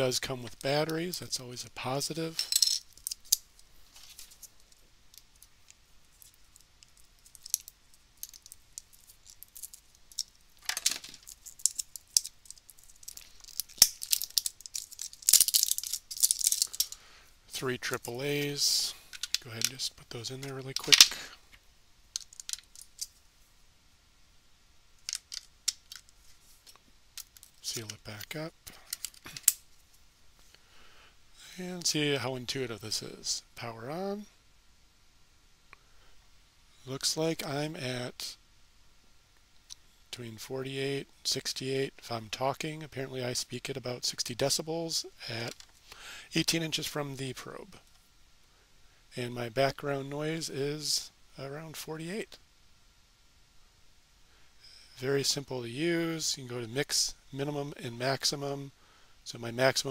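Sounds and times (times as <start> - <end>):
batteries clicking together: 5.1 - 17.0, 22.2 - 23.1, 25.0 - 26.1
plastic wrapper crinkle: 6.1 - 17.0.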